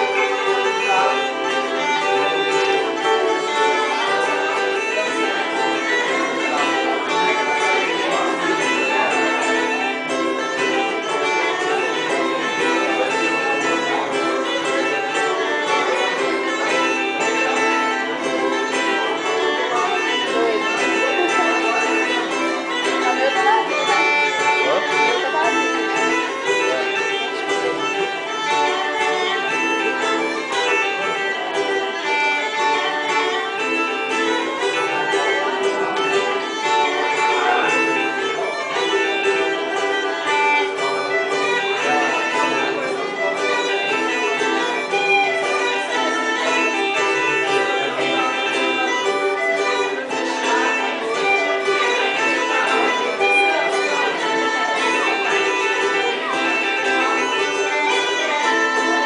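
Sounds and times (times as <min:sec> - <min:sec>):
bagpipe drone: 0:00.0 - 0:59.0
bagpipe folk melody: 0:00.0 - 0:59.0
plucked string instrument: 0:00.0 - 0:59.0.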